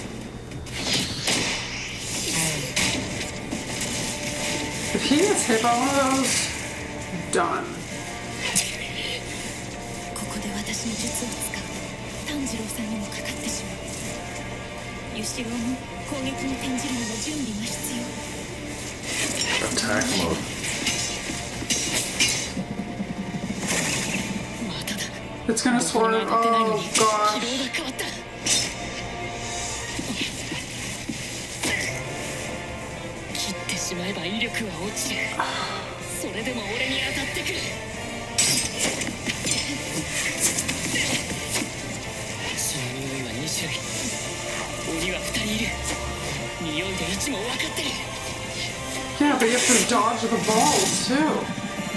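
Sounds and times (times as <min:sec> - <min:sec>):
anime background music: 0:00.0 - 0:51.9
sharp hit sound effects: 0:00.7 - 0:03.4.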